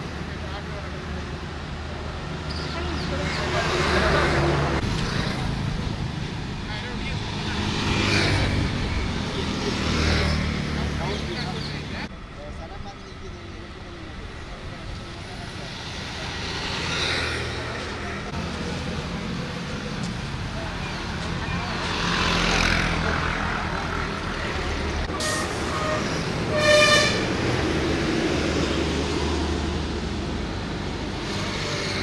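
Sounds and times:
vehicles passing: 0.0 - 32.0.

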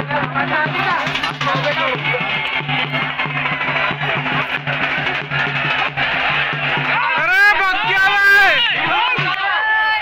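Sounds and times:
background music with steady beat: 0.0 - 9.6.

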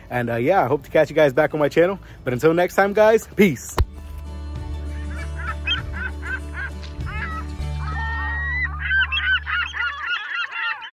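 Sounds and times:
honking goose-like calls: 4.9 - 10.9.

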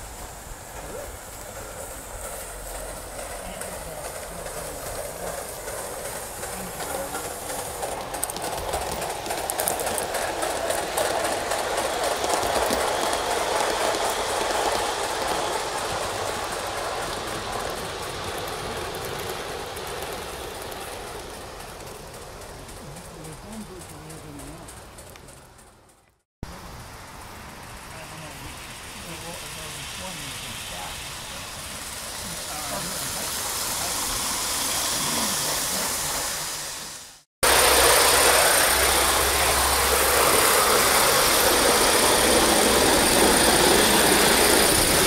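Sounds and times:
model steam train running: 0.0 - 45.0
wheels clicking over rail joints: 0.0 - 45.0.

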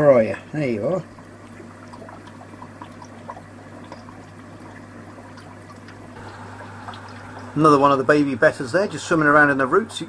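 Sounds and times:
aquarium water trickling and bubbling: 0.0 - 10.0
steady low hum: 0.8 - 10.0
small droplet ticks: 1.2 - 7.6.

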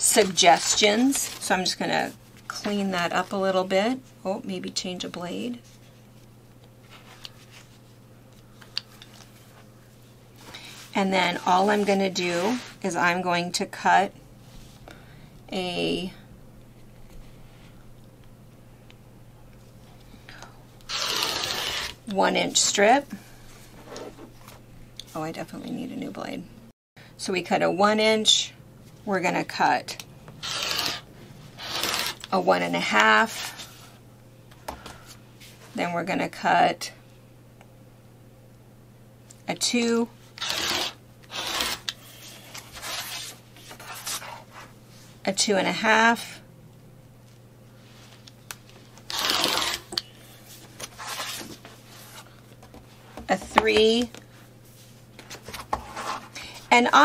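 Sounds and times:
rotary cutter rolling through fabric: 20.9 - 22.0, 30.4 - 32.3, 40.4 - 41.9, 49.1 - 49.9.

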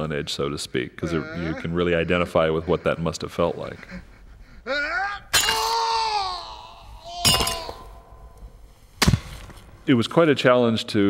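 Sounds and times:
person crying in pain: 1.0 - 8.1
sharp metallic crack: 7.2 - 9.7.

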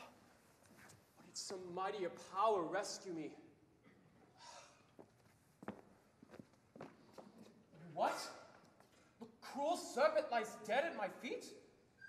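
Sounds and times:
footsteps on stage floor: 5.0 - 7.5.

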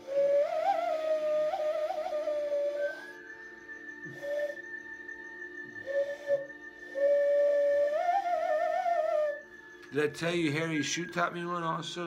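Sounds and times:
hand whistle hooting: 0.0 - 12.0.

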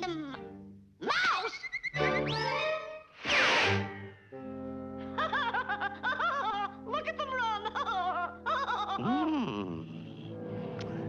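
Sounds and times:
cartoon orchestral music: 1.9 - 8.2
rising whistle-like zip: 3.2 - 4.0.

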